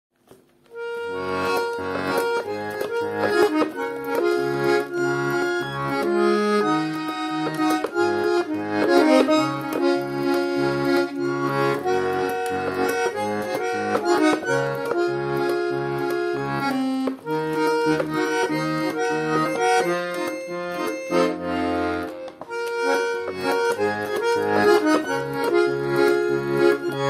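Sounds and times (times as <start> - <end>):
button accordion folk melody: 0.2 - 27.0.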